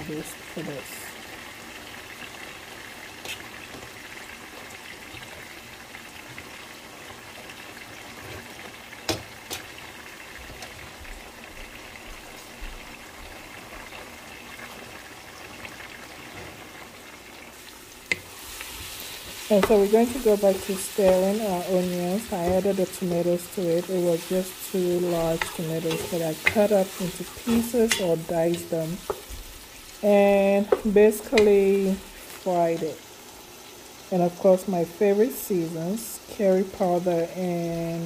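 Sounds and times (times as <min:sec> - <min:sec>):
water boiling in a pot: 0:00.0 - 0:38.0.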